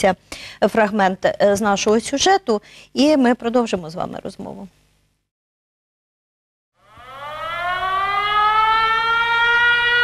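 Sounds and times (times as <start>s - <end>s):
air-raid siren wailing: 6.8s - 10.0s.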